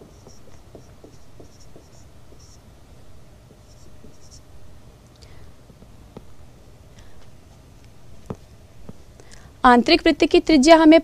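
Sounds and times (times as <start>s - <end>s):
pen scratching on paper: 0.0s - 2.6s, 3.6s - 4.4s.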